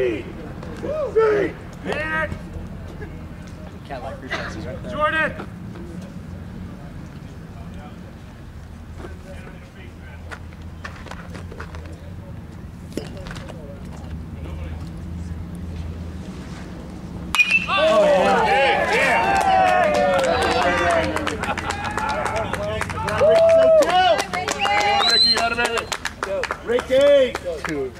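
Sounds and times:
bat hitting baseball: 17.3 - 18.2
crowd shouting and cheering: 17.3 - 26.0.

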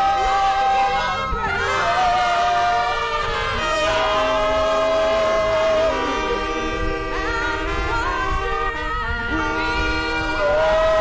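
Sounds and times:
church choir singing: 0.0 - 11.0
trumpet and saxophone: 0.0 - 11.0
woman lead singer: 6.8 - 10.9.

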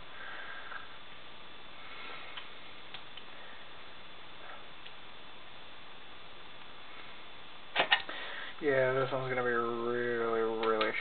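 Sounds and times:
microphone hiss: 0.0 - 11.0
faint clicks: 10.5 - 11.0.

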